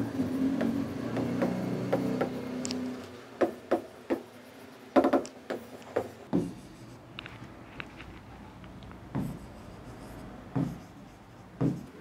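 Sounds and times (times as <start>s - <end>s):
pen writing on screen: 0.0s - 2.6s, 3.4s - 7.0s, 9.0s - 12.0s
pen knocking on screen: 3.4s - 4.3s, 5.0s - 6.6s, 9.1s - 9.4s, 10.5s - 10.9s, 11.6s - 12.0s.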